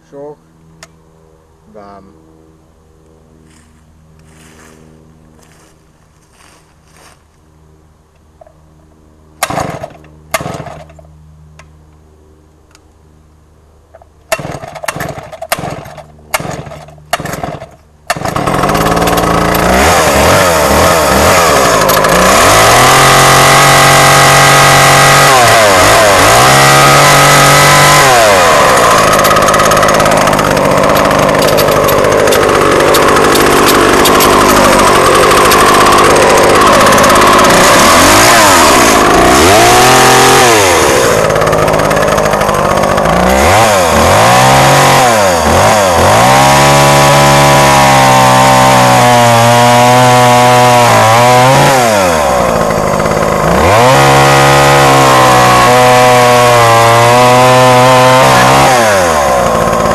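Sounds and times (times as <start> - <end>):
chainsaw engine revving: 9.4 - 11.0, 14.3 - 59.9
starter cord pulls: 14.3 - 19.8, 21.6 - 22.4, 27.9 - 39.4.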